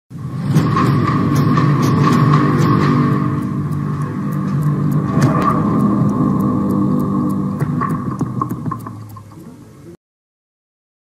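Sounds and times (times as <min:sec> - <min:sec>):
low rumble: 0:00.2 - 0:09.1
sharp ticks: 0:00.6 - 0:09.7
steady high tone: 0:02.5 - 0:09.5.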